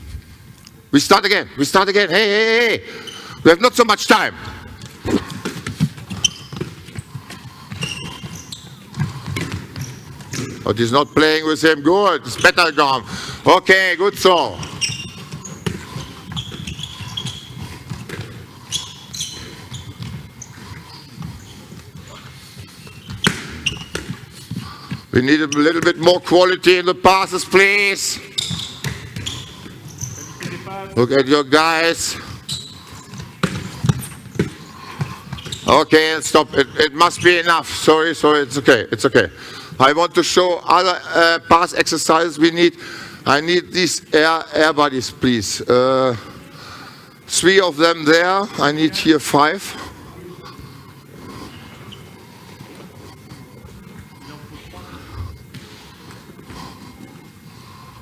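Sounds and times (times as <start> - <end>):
shoes squeaking on floor: 2.4 - 38.6, 47.1 - 58.0
balls bouncing on court: 4.4 - 11.4, 12.0 - 26.4, 27.6 - 30.8, 32.1 - 37.3.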